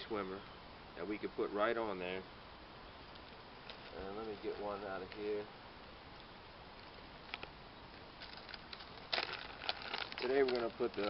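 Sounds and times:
plastic packaging crinkling: 8.2 - 11.0.

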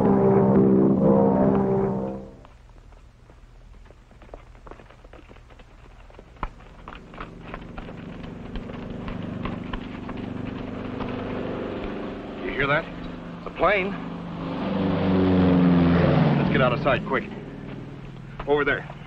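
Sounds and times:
propeller airplane flying overhead: 0.0 - 2.6, 6.3 - 19.0.

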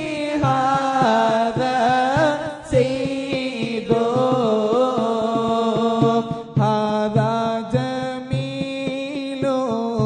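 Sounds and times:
steady drum beat: 0.0 - 9.0
devotional chant singing: 0.0 - 10.0.

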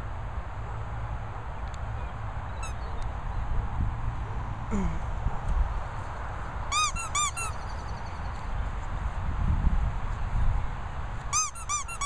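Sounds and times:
wind rumble on microphone: 2.1 - 12.0
squeaky dog toy squeaks: 6.7 - 7.7, 11.3 - 12.0.

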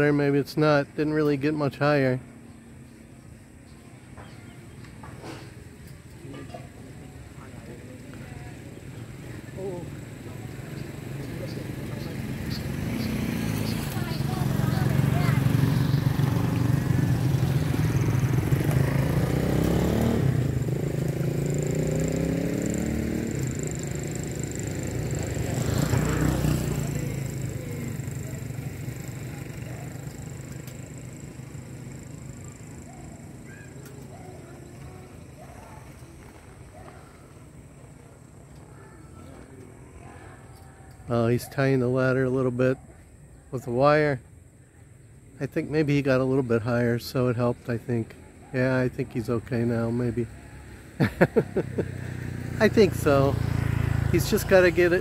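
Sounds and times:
vehicle engine passing by: 6.2 - 42.7, 45.4 - 55.0.

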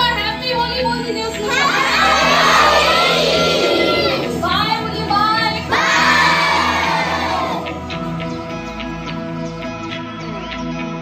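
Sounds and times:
background music: 0.0 - 11.0
children cheering and shouting: 1.4 - 7.8.

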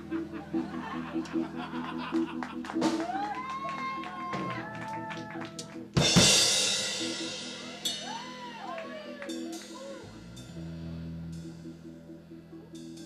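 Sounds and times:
live rock band playing: 0.0 - 11.9
loud cymbal crash: 6.1 - 8.6.

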